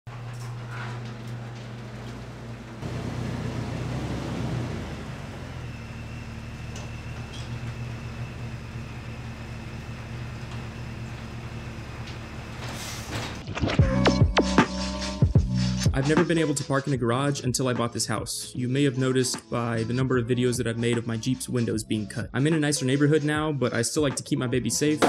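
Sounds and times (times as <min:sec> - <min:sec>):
car engine running at low speed: 0:00.1 - 0:12.8.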